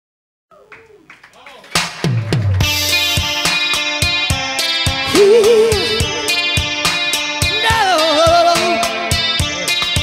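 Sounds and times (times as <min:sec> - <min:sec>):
rock band playing: 0:01.8 - 0:10.0.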